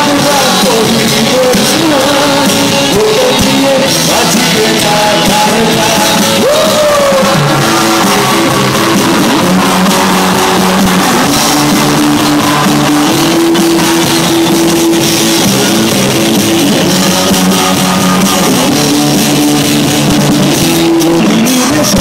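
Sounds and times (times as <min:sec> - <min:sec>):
live rock band playing: 0:00.0 - 0:22.0.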